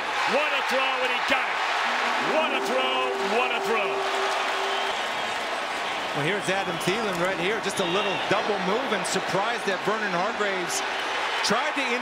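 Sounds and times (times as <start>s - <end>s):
stadium crowd cheering and applauding: 0.0s - 12.0s
steady held tone: 1.9s - 5.0s.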